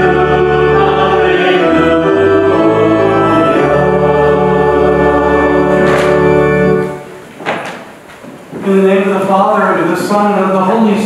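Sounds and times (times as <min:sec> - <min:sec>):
choir holding a chord: 0:00.0 - 0:07.2
church organ chord: 0:00.0 - 0:07.2.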